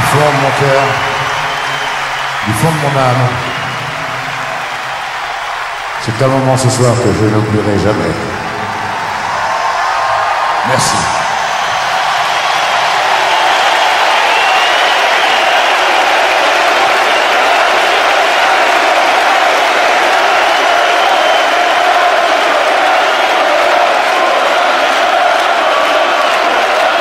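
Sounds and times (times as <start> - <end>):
stadium crowd cheering and applauding: 0.0 - 27.0.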